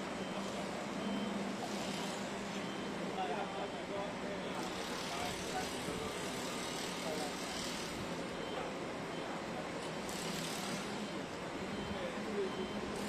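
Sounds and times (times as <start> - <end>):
faint indistinct voices: 0.0 - 13.0
street traffic engines: 0.0 - 13.0.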